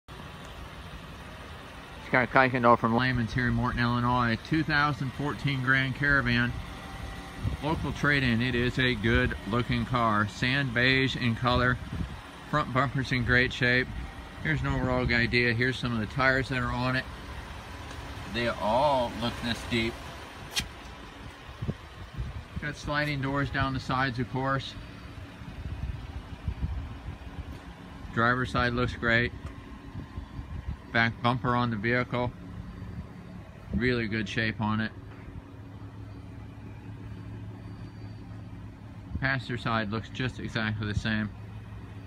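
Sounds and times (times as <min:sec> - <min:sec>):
low rumble of wind: 0:00.1 - 0:42.0
sharp click: 0:20.5 - 0:20.9.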